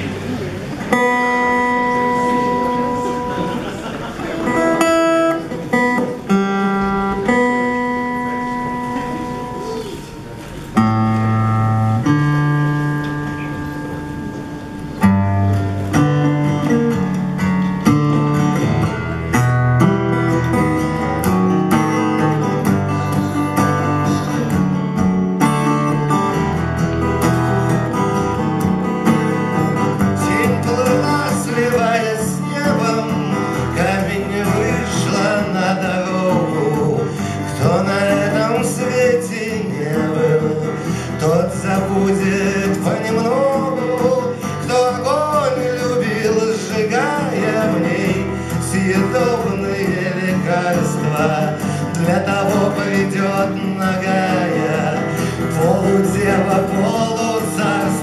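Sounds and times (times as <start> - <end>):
acoustic guitar: 0.0 - 58.0.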